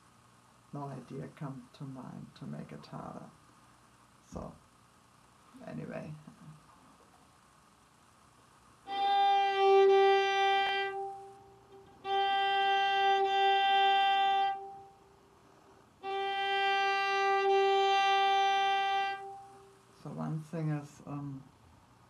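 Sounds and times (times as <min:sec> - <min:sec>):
violin long bowed notes: 0:08.9 - 0:15.0, 0:16.0 - 0:20.6.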